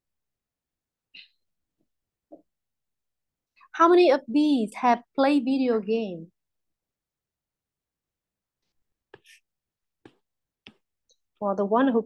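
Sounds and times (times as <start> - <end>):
stylus tapping on glass screen: 10.0 - 10.9.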